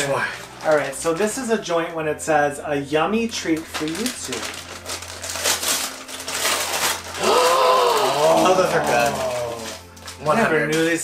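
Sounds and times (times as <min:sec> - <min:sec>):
paper and plastic bag rustling: 0:00.0 - 0:01.6, 0:03.2 - 0:11.0
person saying ooh: 0:07.2 - 0:09.7.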